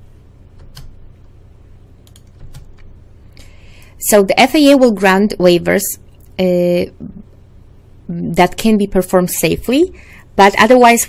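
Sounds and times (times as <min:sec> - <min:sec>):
low electrical hum: 0:00.0 - 0:11.0
computer keys clicking: 0:00.6 - 0:01.3, 0:02.0 - 0:02.9.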